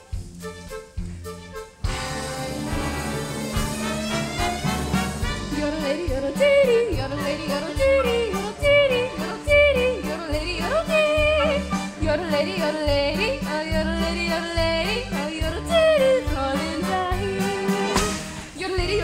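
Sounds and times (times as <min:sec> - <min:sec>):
musical accompaniment with beat: 0:00.0 - 0:19.0
woman yodeling: 0:05.7 - 0:17.5.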